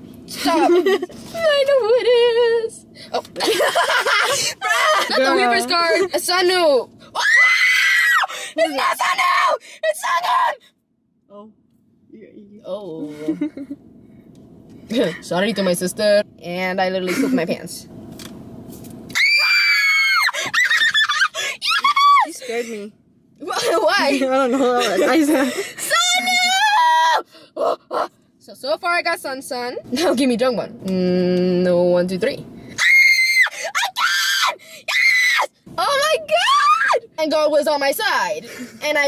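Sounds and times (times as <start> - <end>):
woman giggling: 0.4 - 1.1, 3.4 - 6.1, 13.0 - 13.8, 17.1 - 17.5, 23.4 - 25.7
woman screaming in excitement: 7.2 - 10.6, 19.2 - 22.4, 25.9 - 27.2, 32.8 - 35.5.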